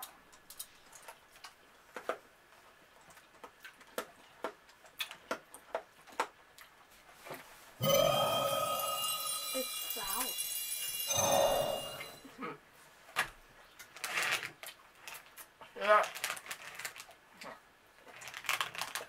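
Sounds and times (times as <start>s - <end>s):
held tones over a hiss: 7.8s - 12.3s
candy tablets being crunched: 14.0s - 17.2s, 18.0s - 19.0s.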